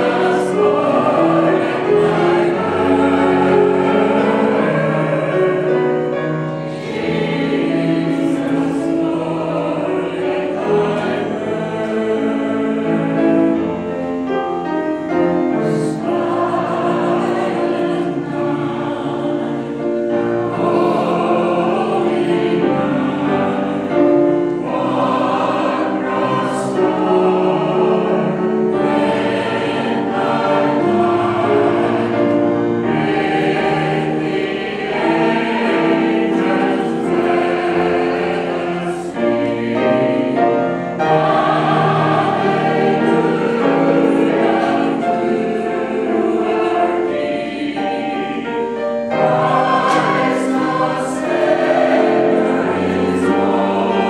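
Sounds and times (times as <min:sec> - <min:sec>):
choir singing carol in harmony: 0:00.0 - 0:54.0.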